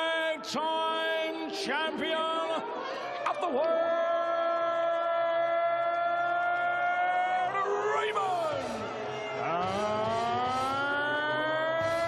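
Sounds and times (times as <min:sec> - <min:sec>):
announcer holding long note: 0:08.5 - 0:12.0.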